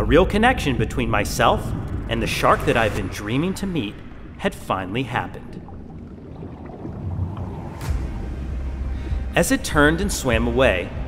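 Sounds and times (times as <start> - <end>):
low underwater rumble: 0.0 - 11.0.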